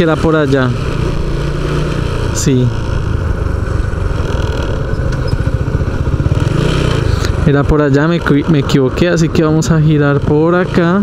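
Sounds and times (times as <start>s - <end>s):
road and wind noise: 0.0s - 11.0s
motorcycle engine slowing down: 0.9s - 7.8s.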